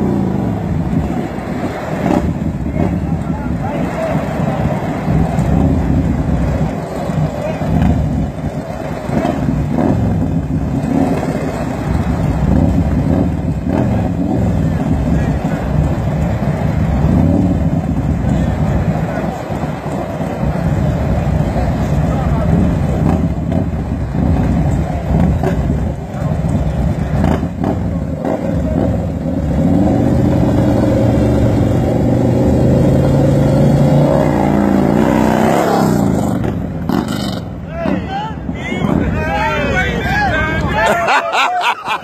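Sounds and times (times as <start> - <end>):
motorcycle engines accelerating: 0.0 - 42.0
voices shouting: 37.6 - 42.0.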